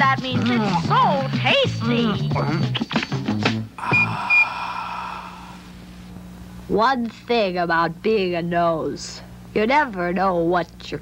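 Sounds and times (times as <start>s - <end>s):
low steady hum: 3.7s - 11.0s.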